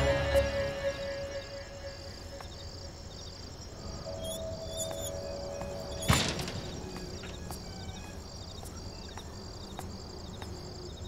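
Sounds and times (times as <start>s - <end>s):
faint sustained music note: 0.0s - 2.4s
crickets chirping: 0.0s - 11.0s.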